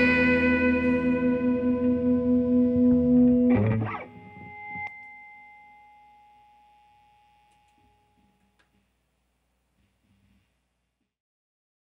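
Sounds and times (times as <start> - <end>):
high ringing tone: 0.0 - 8.1
electric guitar with effects: 0.0 - 8.2.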